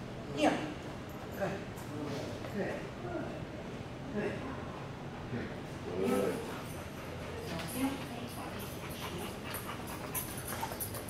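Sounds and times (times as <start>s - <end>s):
dog panting: 6.1s - 11.0s.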